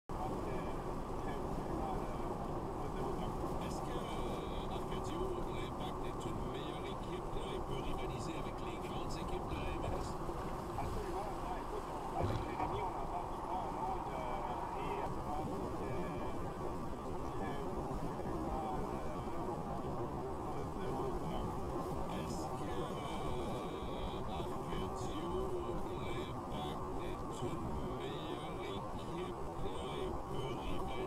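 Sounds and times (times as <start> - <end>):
car road and engine noise: 0.1 - 31.0.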